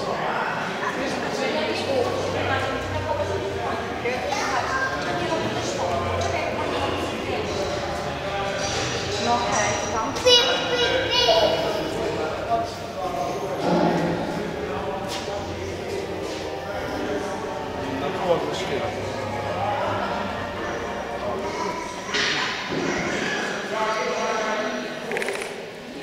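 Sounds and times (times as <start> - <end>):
indistinct chatter in echoing hall: 0.0 - 26.0.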